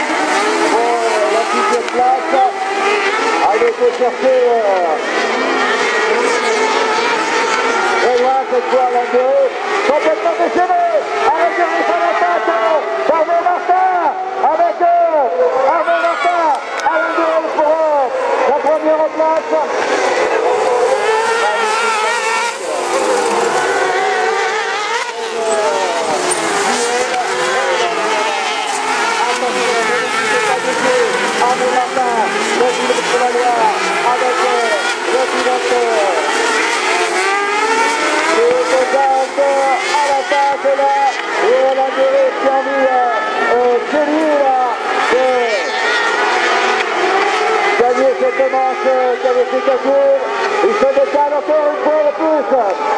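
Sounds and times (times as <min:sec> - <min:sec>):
racing buggy engines revving: 0:00.0 - 0:52.9.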